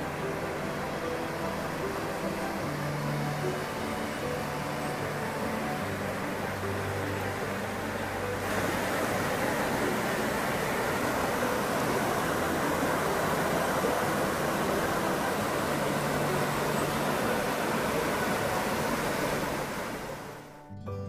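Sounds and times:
river rushing over rocks: 0.0s - 20.5s.

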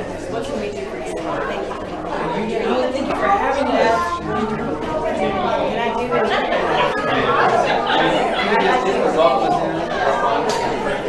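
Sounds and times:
crowd chatting: 0.0s - 11.0s.

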